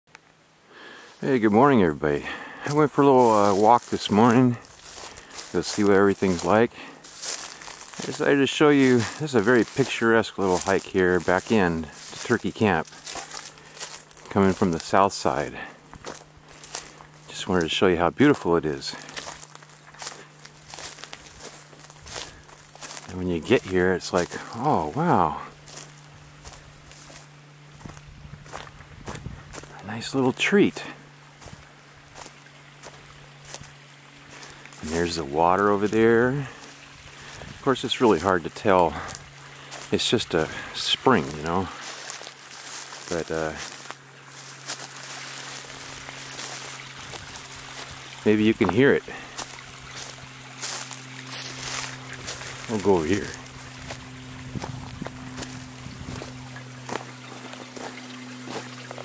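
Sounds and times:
faint rushing water: 0.2 - 28.9, 29.5 - 59.0
footsteps crunching dry leaves: 0.8 - 59.0.

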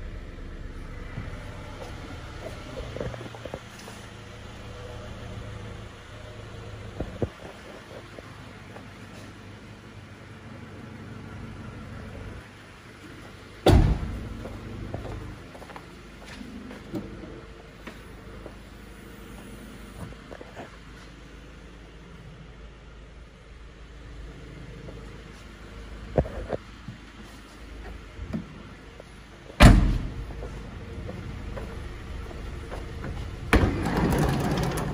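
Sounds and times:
tailgate slamming shut: 13.6 - 14.3, 29.6 - 30.2
car door slamming: 13.6 - 14.4, 29.6 - 30.2.

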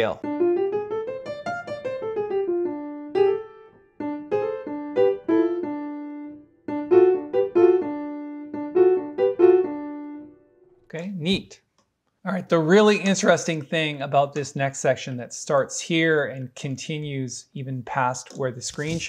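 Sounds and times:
piano playing blues: 0.0 - 10.7.

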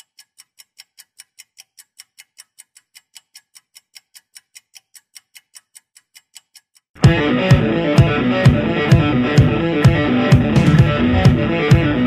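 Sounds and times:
steady percussive ticking: 0.0 - 12.0.

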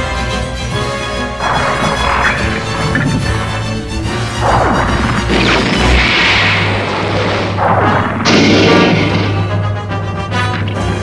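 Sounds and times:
background music: 0.0 - 6.2, 7.6 - 11.0
sci-fi cannon blasts: 1.4 - 9.8.

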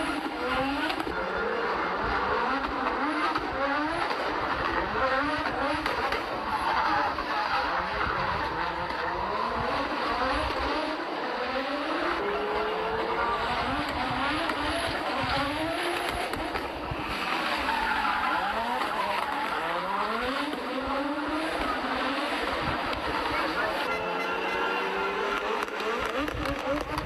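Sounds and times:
rally car engine accelerating: 0.0 - 27.0.

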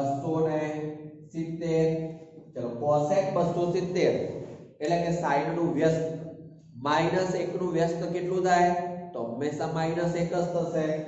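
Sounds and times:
man speaking slowly: 0.0 - 11.0.

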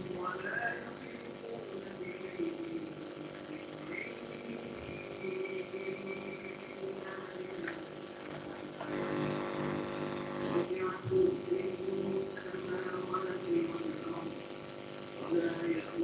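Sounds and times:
faint indistinct voices: 0.0 - 16.0
steady high-pitched whine: 0.0 - 16.0.

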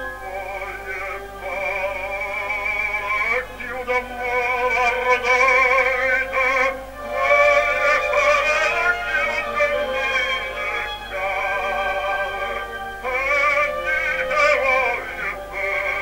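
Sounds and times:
low steady record hum: 0.0 - 16.0
operatic baritone singing: 0.0 - 16.0.

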